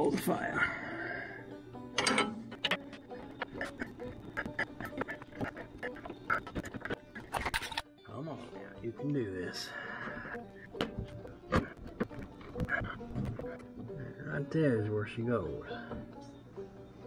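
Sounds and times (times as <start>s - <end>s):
faint background music: 0.0s - 17.0s
metal parts clinking and knocking: 2.0s - 3.7s, 6.8s - 7.8s.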